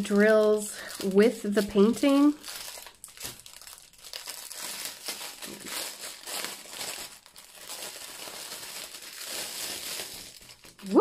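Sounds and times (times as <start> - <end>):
plastic wrap crinkling: 0.0 - 11.0.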